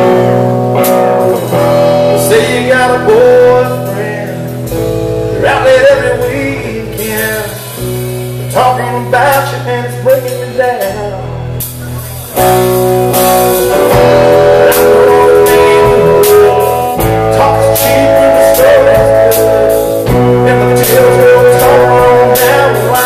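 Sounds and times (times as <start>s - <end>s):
bass line: 0.0s - 23.0s
electric guitar: 0.0s - 23.0s
man singing into a microphone: 1.9s - 11.6s, 13.6s - 23.0s.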